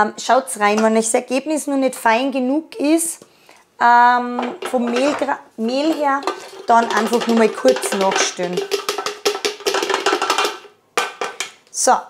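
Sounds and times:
metal clattering against steel bowl: 4.4 - 11.5.

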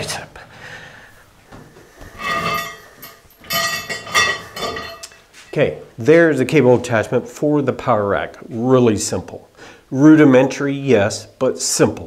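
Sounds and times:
cable pulley squeaking and clinking: 2.2 - 5.2.

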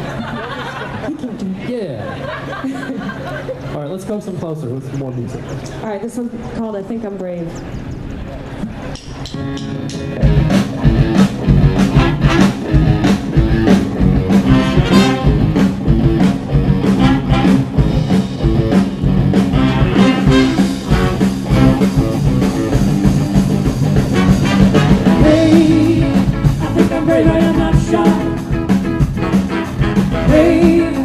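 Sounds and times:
live rock band playing: 8.8 - 31.0.

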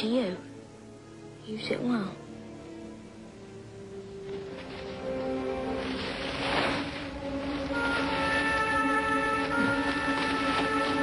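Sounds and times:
orchestral film score: 0.0 - 11.0
paper wrapping rustling: 4.2 - 11.0.

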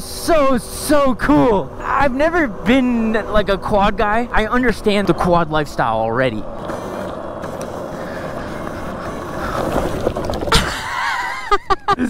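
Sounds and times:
tyres on rough track: 0.0 - 12.0
wind noise: 0.0 - 12.0
rider gasping: 6.7 - 10.8
rider laughing: 7.8 - 12.0.

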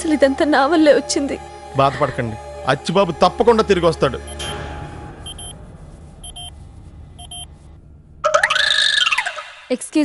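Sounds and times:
low hum: 4.4 - 9.0
patient monitor double beeps: 5.3 - 5.6, 7.2 - 7.5.

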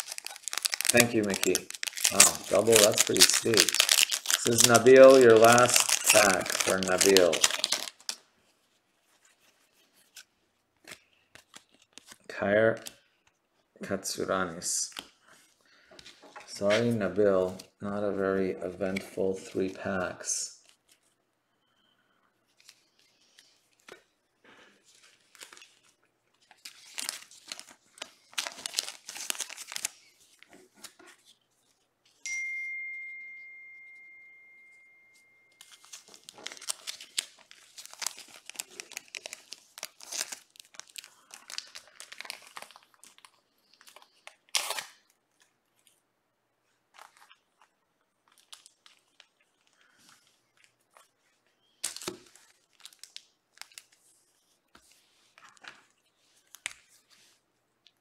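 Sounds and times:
cards being handled: 0.0 - 8.2, 9.2 - 13.4, 24.8 - 32.2, 35.5 - 45.9
foil packs crinkling and tearing: 0.0 - 8.2, 25.2 - 30.4, 35.6 - 45.1, 47.0 - 50.8, 51.7 - 54.0
single ding: 32.3 - 35.5.

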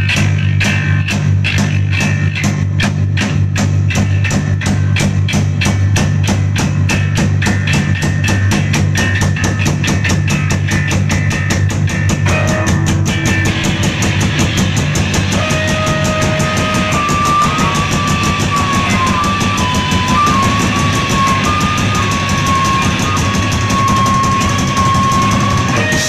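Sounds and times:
fast drumming: 0.0 - 26.0
wall of guitar noise: 0.0 - 26.0
high wavering held tone: 13.6 - 26.0.

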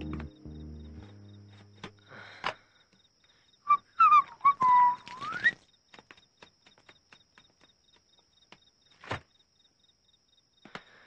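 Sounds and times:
person whistling: 3.7 - 5.6.

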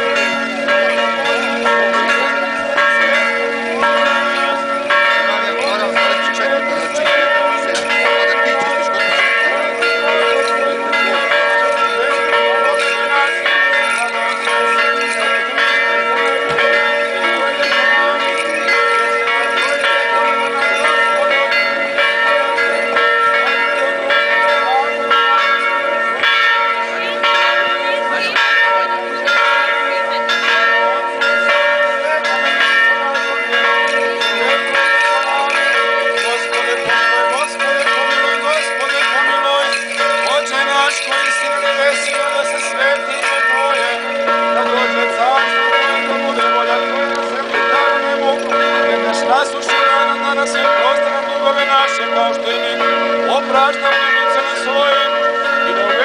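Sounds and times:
church bells ringing: 0.0 - 56.0.

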